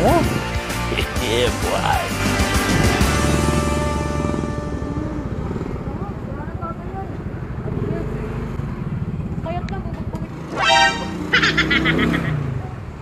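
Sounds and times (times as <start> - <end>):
motorcycle engine running: 1.8 - 12.9.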